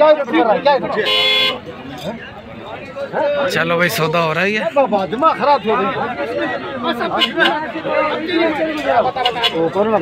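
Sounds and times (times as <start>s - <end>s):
men talking at once: 0.0s - 10.0s.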